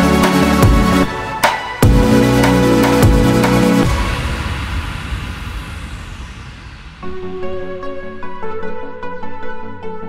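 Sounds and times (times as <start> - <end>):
white-noise sweep: 2.0 - 8.2.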